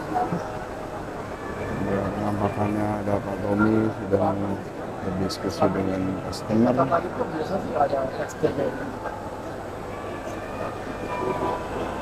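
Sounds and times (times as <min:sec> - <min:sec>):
busy exhibition hall din: 0:00.0 - 0:12.0.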